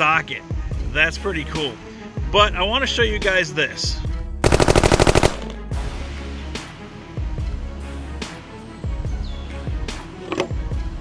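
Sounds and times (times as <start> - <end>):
machine-gun fire: 4.4 - 5.8.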